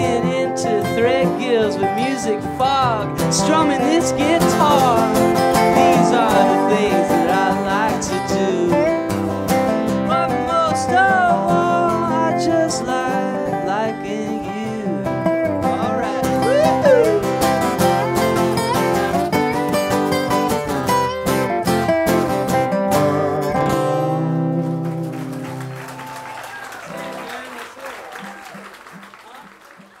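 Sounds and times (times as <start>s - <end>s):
acoustic guitars playing: 0.0s - 27.6s
faint audience sound: 24.7s - 30.0s.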